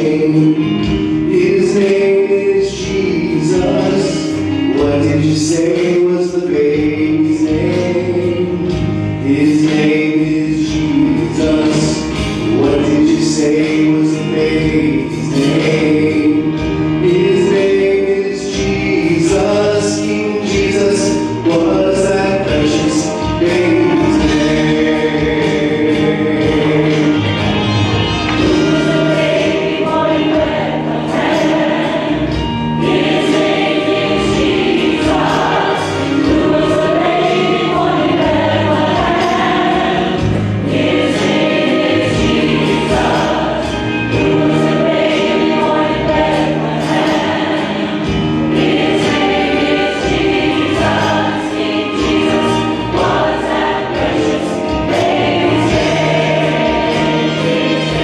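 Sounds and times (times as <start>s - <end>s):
choir singing gospel: 0.0s - 58.0s
instrumental accompaniment: 0.0s - 58.0s.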